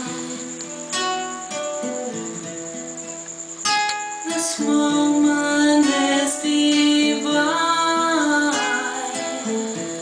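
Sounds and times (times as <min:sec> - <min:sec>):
acoustic guitar plucking: 0:00.0 - 0:10.0
acoustic guitar strum: 0:00.0 - 0:10.0.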